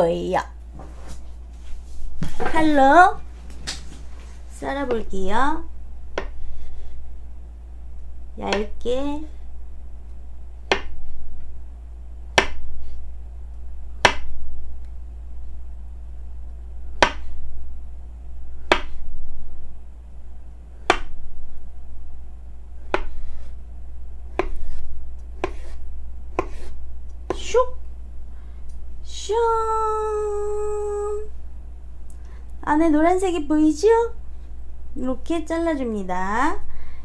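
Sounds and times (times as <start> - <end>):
knife slicing avocado: 18.6 - 19.0, 20.8 - 21.2, 22.8 - 23.6, 24.3 - 27.6.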